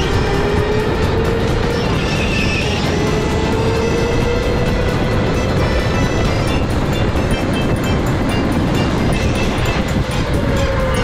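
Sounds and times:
tyres rumbling on track: 0:00.0 - 0:11.0.

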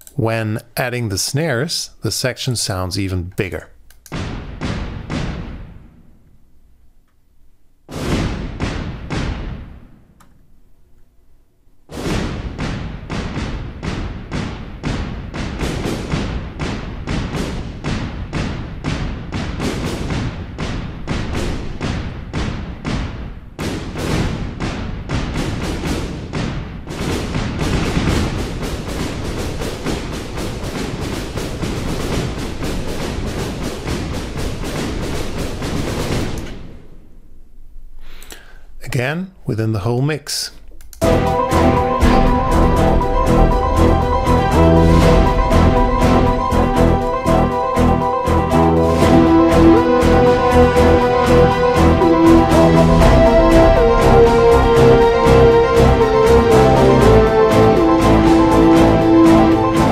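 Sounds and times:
electronic drum groove: 0:41.0 - 0:59.9.

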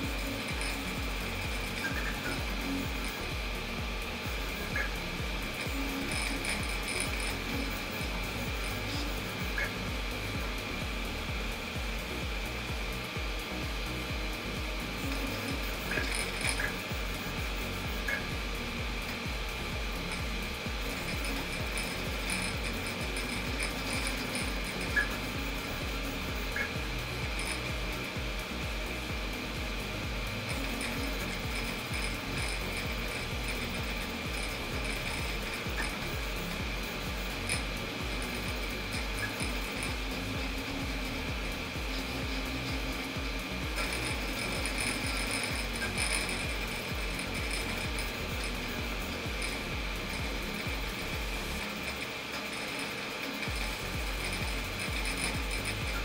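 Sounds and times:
cooling fan noise: 0:00.0 - 0:56.0
stepper motors buzzing: 0:00.0 - 0:56.0.

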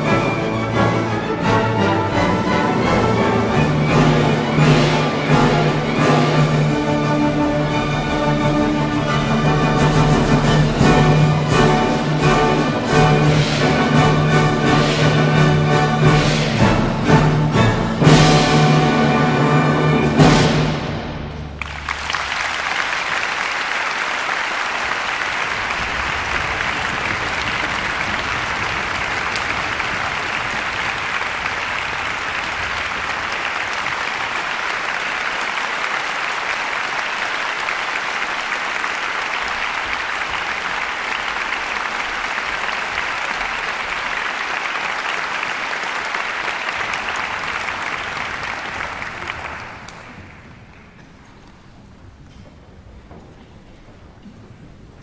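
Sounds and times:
audience applause: 0:00.0 - 0:20.4, 0:21.4 - 0:51.9.

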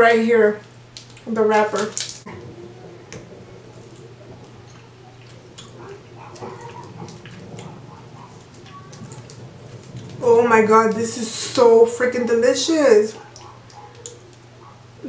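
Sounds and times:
person chewing sticky candy: 0:00.6 - 0:10.2, 0:13.2 - 0:14.8.

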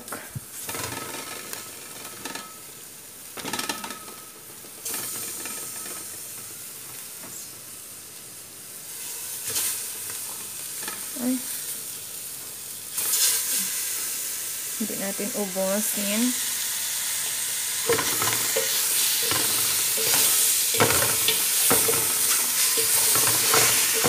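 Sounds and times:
food sizzling in hot oil: 0:00.0 - 0:24.0.

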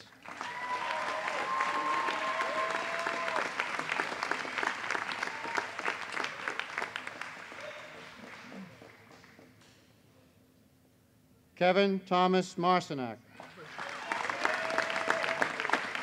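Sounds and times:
audience applause: 0:00.0 - 0:09.4, 0:13.4 - 0:16.0
long held cheer: 0:00.2 - 0:08.6, 0:13.4 - 0:16.0.

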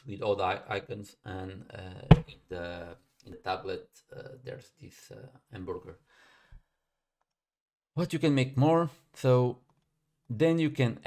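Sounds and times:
person speaking: 0:00.0 - 0:06.0
soft low thump: 0:02.1 - 0:02.3.

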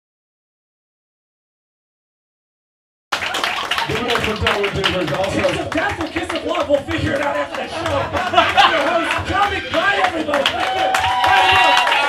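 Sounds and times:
audience applause: 0:03.1 - 0:12.0.

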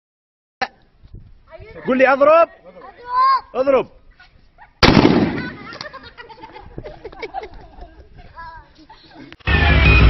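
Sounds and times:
rifle shot: 0:04.8 - 0:05.7.

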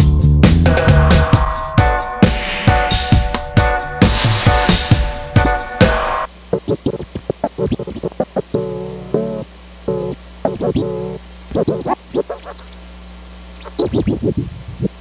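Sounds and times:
turntable scratching: 0:02.2 - 0:15.0
faint steady hum: 0:04.9 - 0:15.0.

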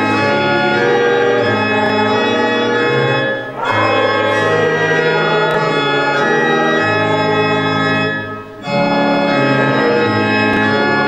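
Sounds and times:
church organ playing chords: 0:00.0 - 0:11.0.

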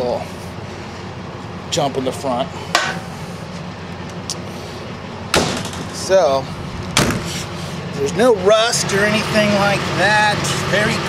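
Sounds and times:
metal door slamming: 0:05.3 - 0:06.3, 0:07.0 - 0:07.4.

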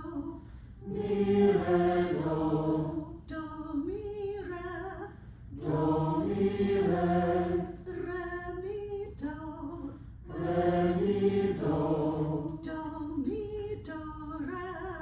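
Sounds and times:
woman singing solfege: 0:00.0 - 0:00.5, 0:03.1 - 0:05.2, 0:07.8 - 0:10.1, 0:12.5 - 0:15.0
class singing in unison: 0:00.8 - 0:03.2, 0:05.5 - 0:08.0, 0:10.2 - 0:13.1.

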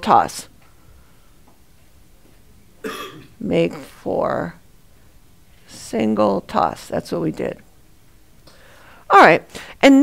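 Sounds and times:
person coughing: 0:02.8 - 0:03.3.

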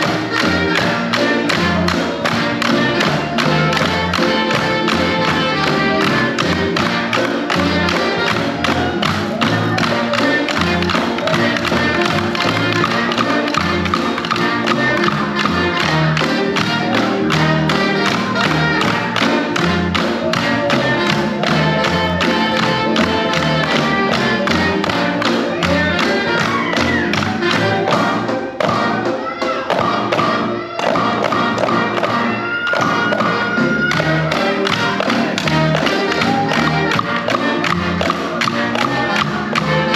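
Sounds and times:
backing music with bass line: 0:00.0 - 0:39.9.

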